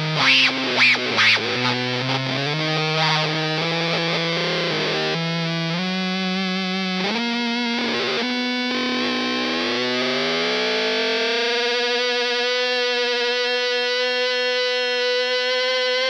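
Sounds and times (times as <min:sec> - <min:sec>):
guitar note sliding upward: 0:00.0 - 0:04.2
fuzzed electric guitar notes: 0:00.0 - 0:16.0.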